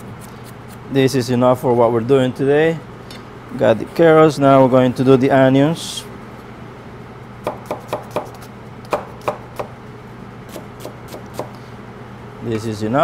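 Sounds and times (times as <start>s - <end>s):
steady low hum: 0.0s - 13.0s
knife chopping on cutting board: 7.4s - 9.7s, 10.5s - 11.5s.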